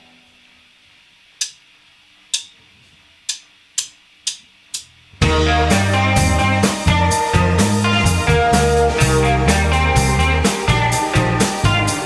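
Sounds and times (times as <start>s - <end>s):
drumstick clicks: 1.4s - 1.6s, 2.3s - 2.6s, 3.3s - 4.9s
band playing drums and guitars: 5.2s - 12.0s.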